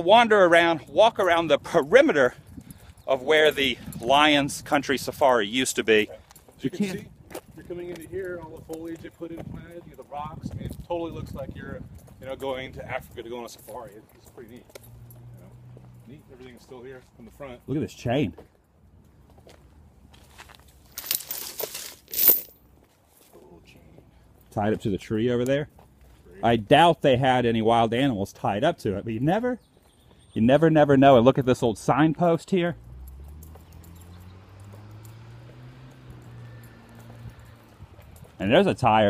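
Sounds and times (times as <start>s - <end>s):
footsteps on pavement: 1.0s - 21.9s, 22.7s - 26.8s, 29.2s - 30.8s, 32.8s - 39.0s
vehicle engine humming: 11.8s - 17.9s, 32.5s - 39.0s
dry leaves crunching: 20.0s - 22.5s.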